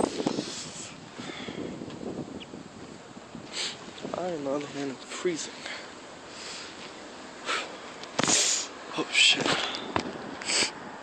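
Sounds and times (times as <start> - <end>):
wind noise on microphone: 0.0 - 5.0, 9.3 - 11.0.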